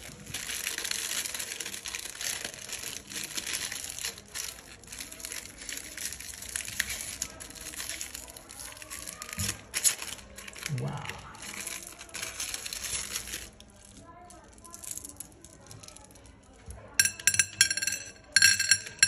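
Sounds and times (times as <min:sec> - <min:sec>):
plastic wrapper crinkling and tearing: 0:00.0 - 0:16.6.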